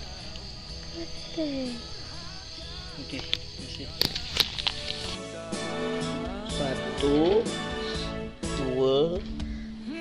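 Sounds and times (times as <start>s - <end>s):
insect buzz: 0.0s - 8.8s
acoustic guitar music: 2.8s - 9.4s.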